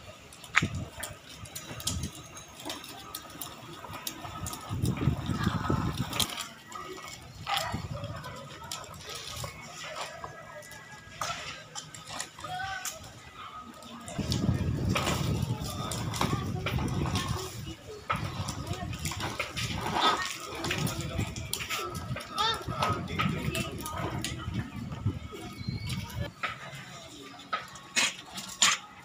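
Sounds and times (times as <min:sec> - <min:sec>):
plastic wheels rolling on concrete: 0:00.0 - 0:29.0.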